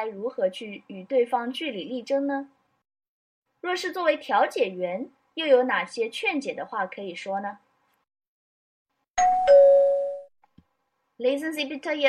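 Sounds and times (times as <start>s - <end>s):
two-note ding-dong chime: 9.2s - 10.3s.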